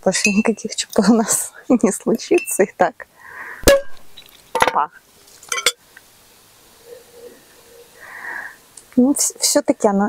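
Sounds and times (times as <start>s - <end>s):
sparkling wine fizzing: 5.2s - 5.8s.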